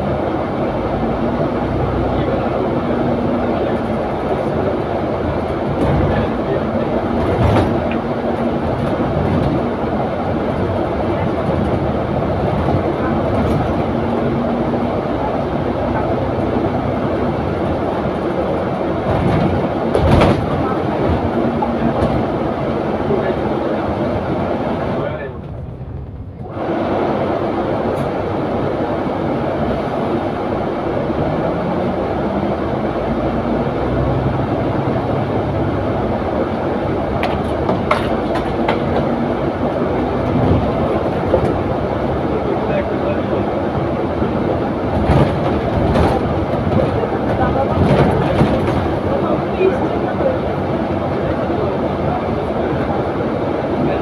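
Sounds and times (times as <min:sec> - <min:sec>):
bus engine and road rumble: 0:00.0 - 0:54.0
knocks and rattles: 0:19.0 - 0:20.6.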